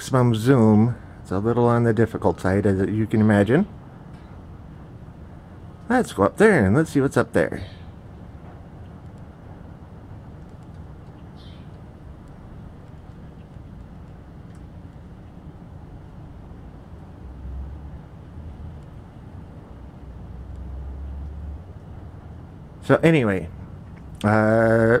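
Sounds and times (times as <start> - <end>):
steady low rumble: 0.0 - 25.0.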